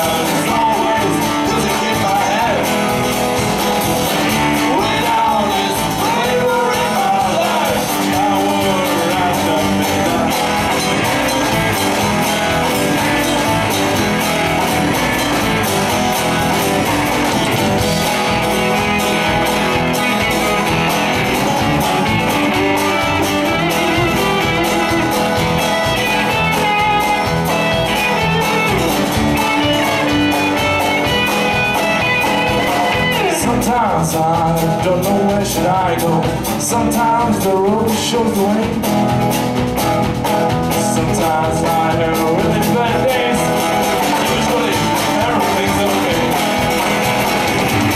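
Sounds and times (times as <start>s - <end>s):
drum kit: 0.0s - 47.9s
electric bass: 0.0s - 47.9s
guitar melody: 0.0s - 47.9s
strummed acoustic guitar: 0.0s - 47.9s.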